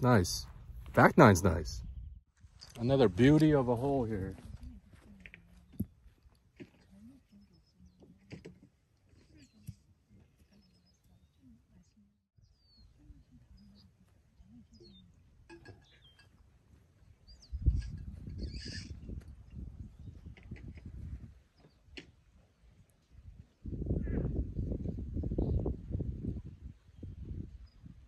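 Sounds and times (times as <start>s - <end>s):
small birds chirping: 9.2s - 16.4s, 17.1s - 20.5s.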